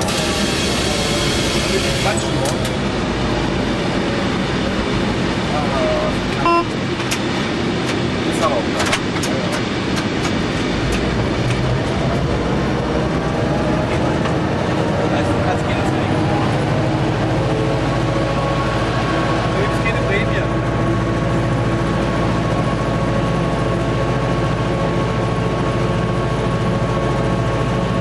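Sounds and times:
diesel engine running under load: 0.0s - 28.0s
brief high tone: 6.4s - 6.8s.

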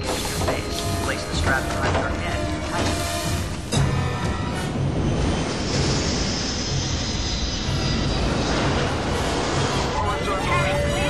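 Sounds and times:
higher gliding tones: 0.0s - 11.0s
jet airliner roar: 0.0s - 11.0s.

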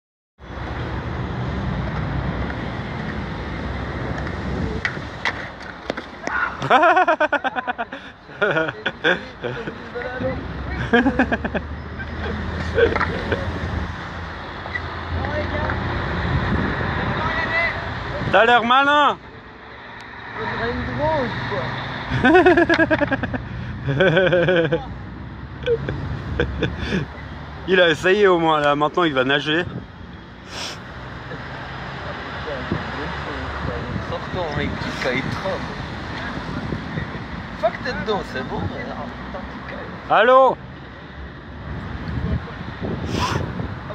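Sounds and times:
young men laughing and calling out: 6.2s - 13.8s, 16.9s - 19.3s, 20.2s - 29.8s, 31.1s - 40.6s
wind buffeting microphone: 16.2s - 18.4s, 33.6s - 37.5s, 41.6s - 43.9s.

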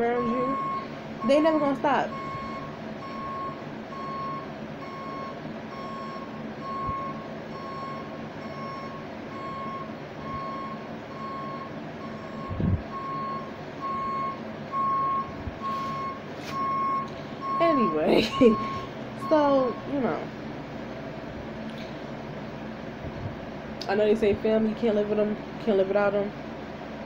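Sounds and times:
reversing alarm beeping: 0.0s - 20.3s.

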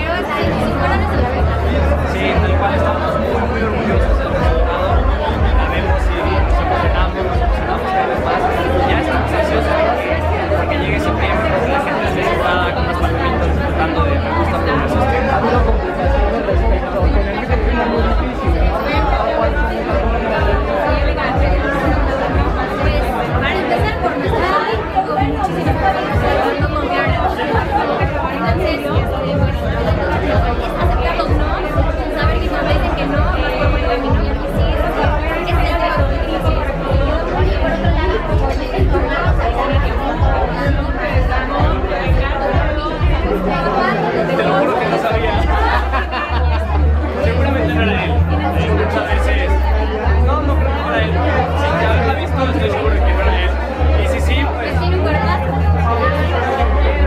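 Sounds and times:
loud background music: 0.0s - 57.0s
voices chattering: 0.0s - 57.0s.

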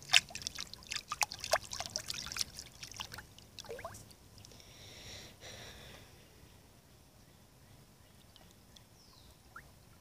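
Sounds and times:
faint high chirps and ticks: 8.0s - 10.0s.

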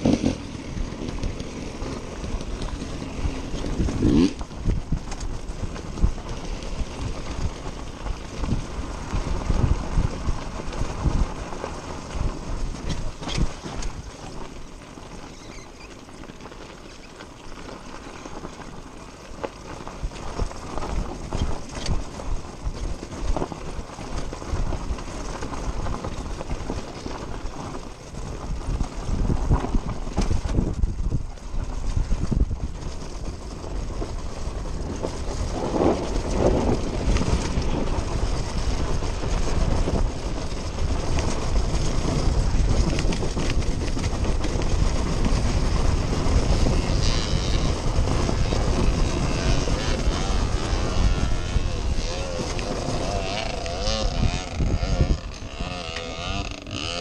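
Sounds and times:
knocks and clatter from bumps: 0.0s - 7.6s
dirt bike engine: 0.0s - 57.0s
wind noise: 0.0s - 57.0s.

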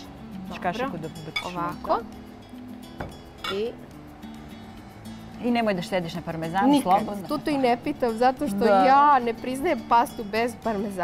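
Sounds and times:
background music: 0.0s - 11.0s
spoon clinking against bowl: 1.3s - 1.7s.

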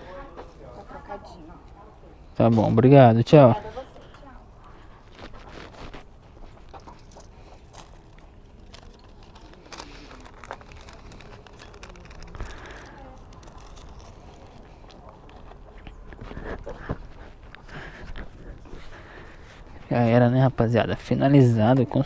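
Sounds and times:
handling clicks and rustles: 5.1s - 19.7s.

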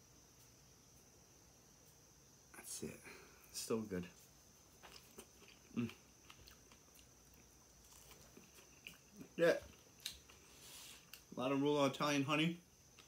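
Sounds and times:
person chewing: 4.8s - 11.2s.

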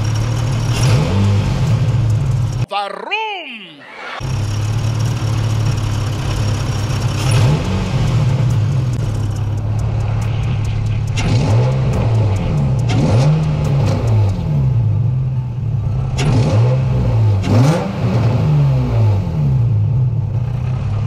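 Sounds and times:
car engine idling and revving: 0.0s - 2.7s, 3.9s - 21.0s.

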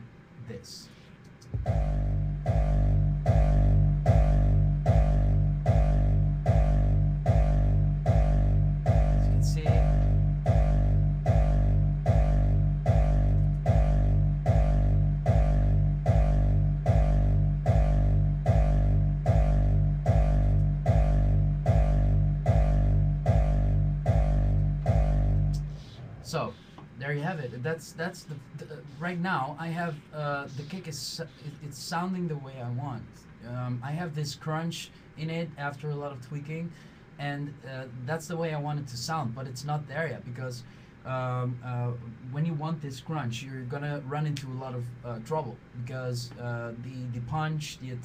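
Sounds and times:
distorted kick drum beat: 1.4s - 26.6s.

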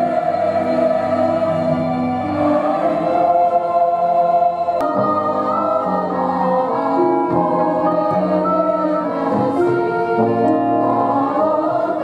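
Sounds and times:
choir singing held chords: 0.0s - 12.0s.

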